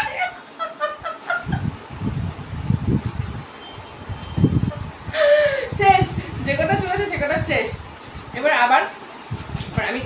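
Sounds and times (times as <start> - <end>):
woman laughing: 0.0 - 1.8, 4.7 - 6.2.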